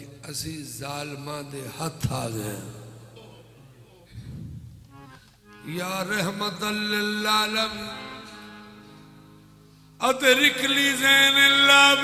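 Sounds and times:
man chanting through microphone: 0.0 - 3.0.

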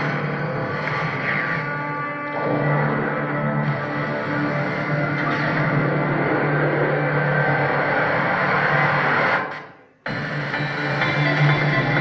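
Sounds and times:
soundtrack over loudspeakers: 0.0 - 12.0.

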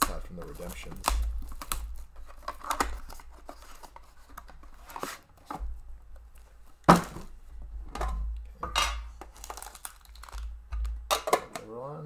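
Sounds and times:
packaging torn and crinkled: 0.0 - 4.0, 9.3 - 10.5.

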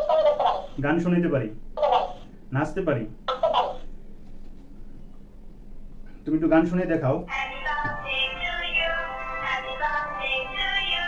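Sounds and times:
toy singing in synthetic voice: 7.3 - 11.0.

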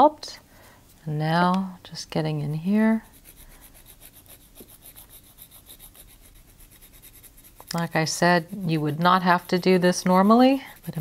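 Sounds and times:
nail file rasping on plastic: 2.9 - 11.0.

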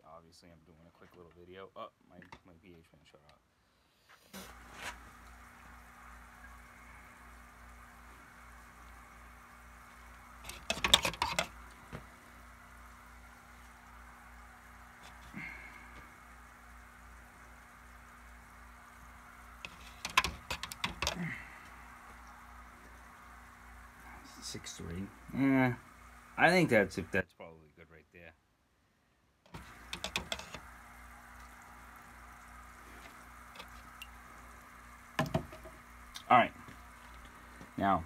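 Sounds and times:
steady low hum: 4.4 - 28.4, 29.5 - 38.0
pen knocking in plastic cup: 29.9 - 30.6, 35.2 - 35.7.

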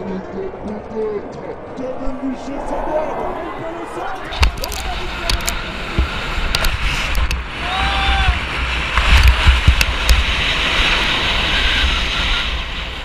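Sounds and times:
wind buffeting microphone: 0.0 - 13.0
scattered clicks: 4.3 - 7.4.

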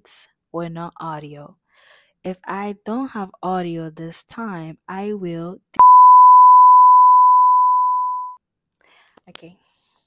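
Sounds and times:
censor bleep tone: 5.8 - 8.4.

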